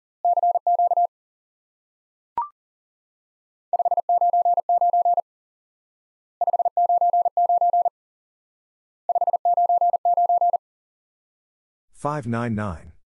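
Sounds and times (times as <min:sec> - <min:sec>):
morse code tone: 0:09.1 - 0:10.6.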